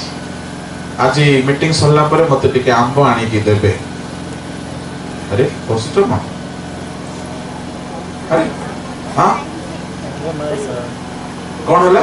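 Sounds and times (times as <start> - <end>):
steady background hum: 0.0 - 12.0
man speaking through loudspeaker: 8.3 - 11.0.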